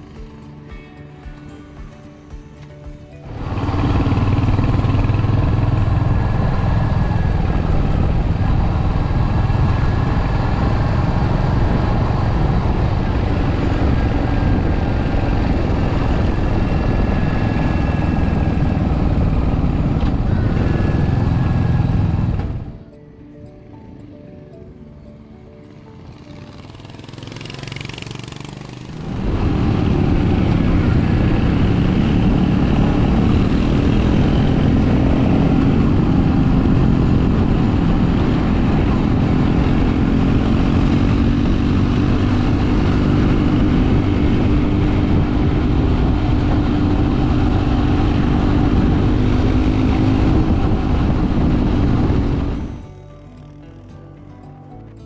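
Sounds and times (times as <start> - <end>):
motorcycle engine while riding: 1.8 - 22.9, 25.2 - 54.3.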